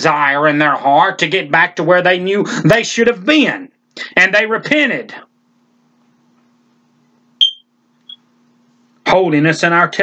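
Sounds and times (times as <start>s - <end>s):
faint steady hum: 0.0s - 10.0s
short high electronic beep: 7.4s - 8.2s.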